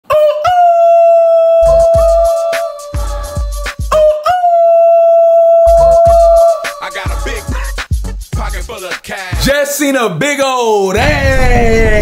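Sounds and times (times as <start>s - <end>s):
bass-heavy hip-hop beat: 1.6s - 4.1s, 5.7s - 9.7s.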